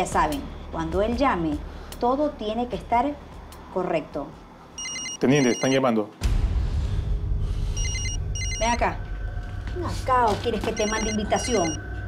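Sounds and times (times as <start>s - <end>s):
cell phone trilling ringtone: 4.8s - 5.8s, 7.8s - 8.8s, 10.8s - 11.8s.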